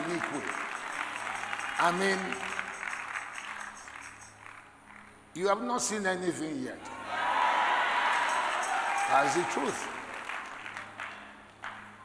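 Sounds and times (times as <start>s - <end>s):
congregation clapping: 0.0s - 5.2s, 8.0s - 12.0s.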